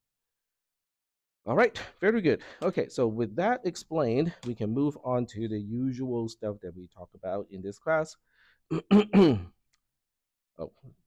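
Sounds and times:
man clearing throat: 8.7 - 9.6.

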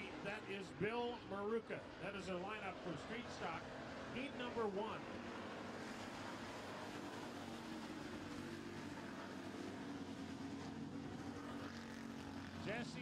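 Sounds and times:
race car engines droning: 0.0 - 13.0.

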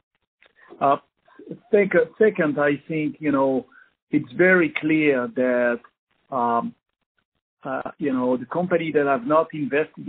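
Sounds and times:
man talking on a phone line: 0.8 - 6.8, 7.7 - 10.0.

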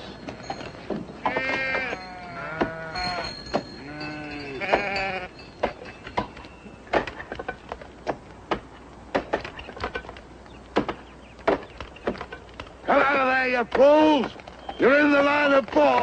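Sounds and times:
animals bleating: 1.2 - 5.4
axes chopping timber: 5.6 - 14.5, 15.2 - 16.0.

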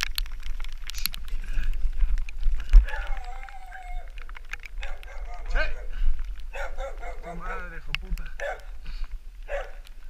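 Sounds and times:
bike rattling and clicking: 0.0 - 10.0
wind buffeting microphone: 0.0 - 10.0.

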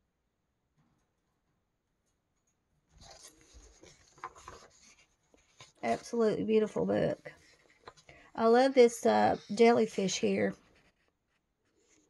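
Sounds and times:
paper crinkles: 3.0 - 6.2
paper page rustling: 3.0 - 6.3, 7.4 - 8.1, 10.2 - 12.0.

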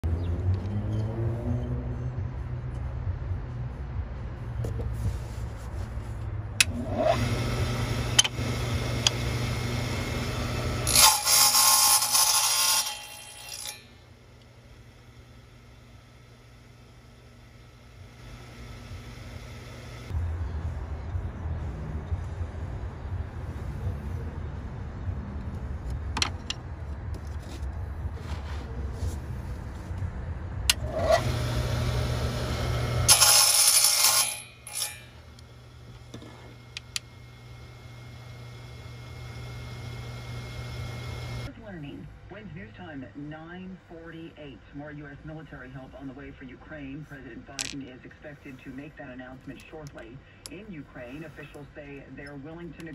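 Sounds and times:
saw blade cutting tube: 6.6 - 14.0, 30.7 - 35.3
table saw running: 6.7 - 20.1, 30.7 - 41.5.

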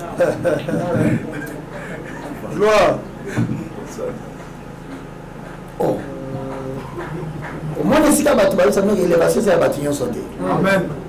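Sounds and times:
man speaking: 7.8 - 11.0.

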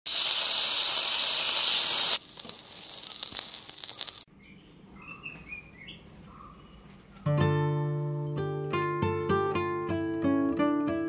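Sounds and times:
butter and spices sizzling: 0.1 - 4.3.

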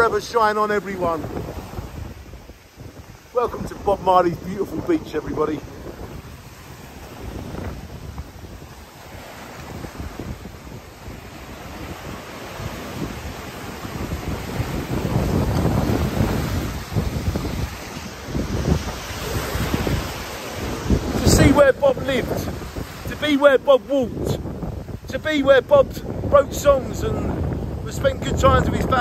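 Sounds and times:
surf breaking over rocks: 0.0 - 29.0
wind buffeting microphone: 0.0 - 29.0.

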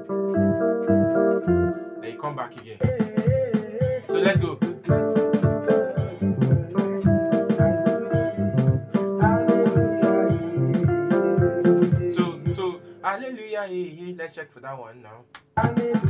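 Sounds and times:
electronic keyboard groove: 0.0 - 13.4.

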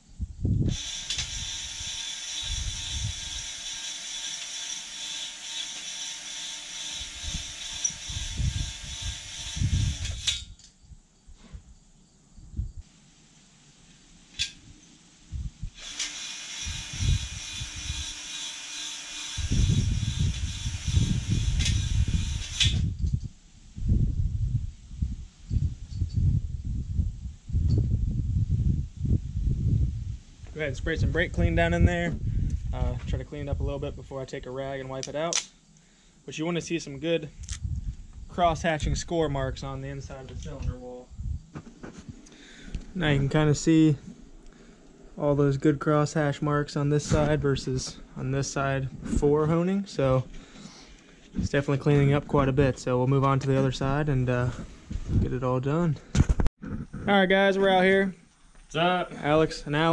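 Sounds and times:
power drill spinning hone: 0.7 - 10.3, 15.7 - 23.0
hone stones scraping metal: 0.7 - 10.5.

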